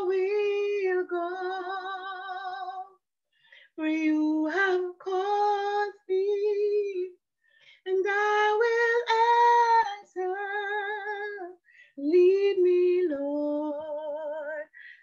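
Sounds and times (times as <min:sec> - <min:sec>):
woman singing unaccompanied: 0:00.0 - 0:03.0, 0:03.8 - 0:07.2, 0:07.9 - 0:15.0.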